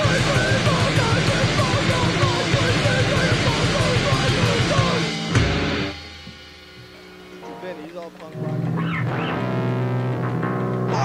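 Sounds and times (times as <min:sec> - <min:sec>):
distorted guitar and bass punk: 0:00.0 - 0:11.0.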